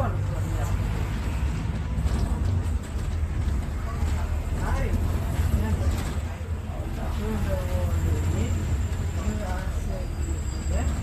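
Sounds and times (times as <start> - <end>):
bus engine and road rumble: 0.0 - 11.0
faint voices: 0.0 - 11.0.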